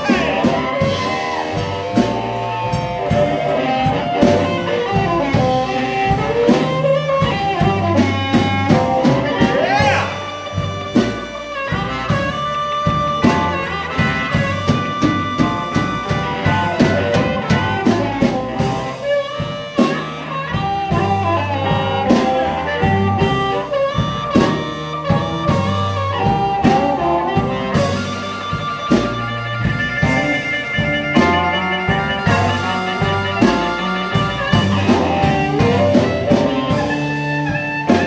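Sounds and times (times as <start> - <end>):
amplified harmonica: 0.0 - 38.0
drum kit: 0.0 - 38.0
electric guitar: 0.0 - 38.0
upright bass: 0.0 - 38.0.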